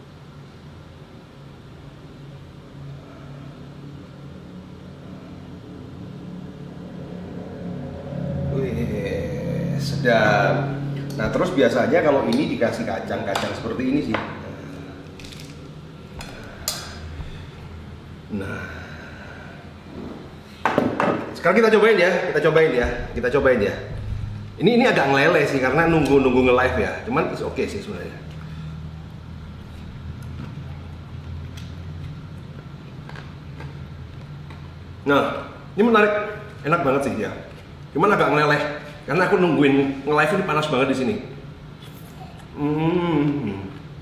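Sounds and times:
low background hum: 0.0s - 44.0s.

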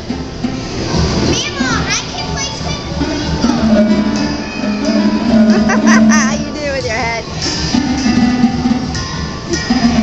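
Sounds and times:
harp notes ringing: 3.4s - 6.7s.

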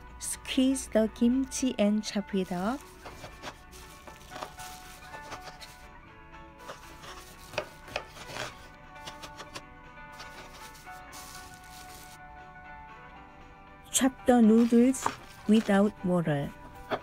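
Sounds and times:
faint background music: 0.0s - 17.0s
knife chopping on wooden board: 3.0s - 3.6s, 6.6s - 9.6s, 15.0s - 15.4s.

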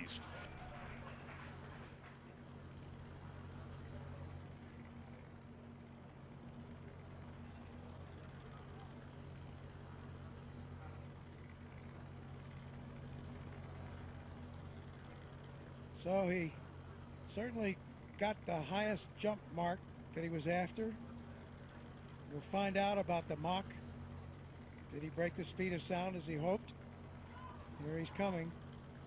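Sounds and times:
low hum with hiss: 0.0s - 29.0s.

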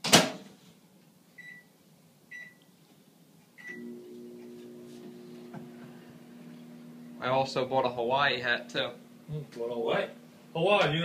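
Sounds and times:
microwave humming: 3.6s - 11.0s.

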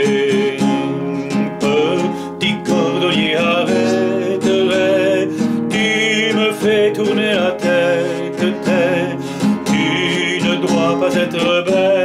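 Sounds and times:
classical guitar strumming: 0.0s - 12.0s.

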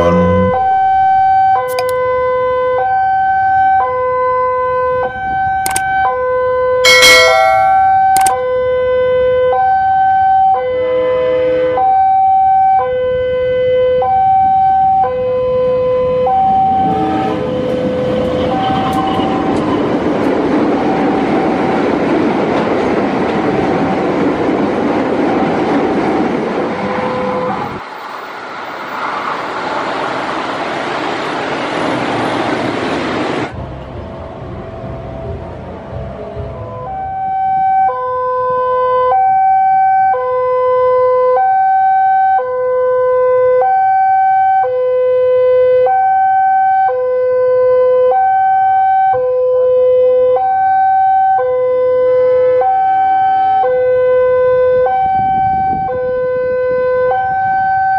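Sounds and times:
level crossing alarm ding-dong: 6.8s - 8.3s
train rumbling and clattering past: 15.6s - 37.4s.

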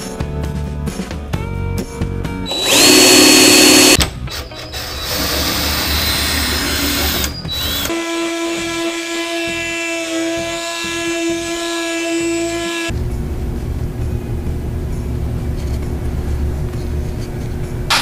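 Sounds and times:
cordless drill whining: 2.5s - 4.0s
oscillating multi-tool buzzing: 2.5s - 4.0s.

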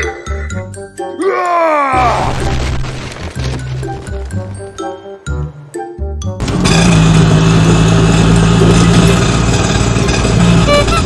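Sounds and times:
small engine running: 6.4s - 11.0s.

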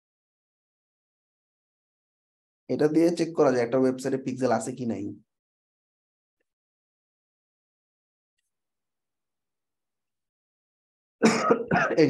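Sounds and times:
person coughing: 11.2s - 12.0s
person speaking: 11.2s - 12.0s.

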